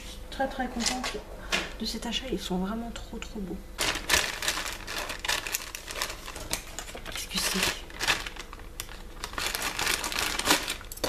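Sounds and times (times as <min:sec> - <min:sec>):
packaging crackling and crinkling: 0:03.8 - 0:11.0.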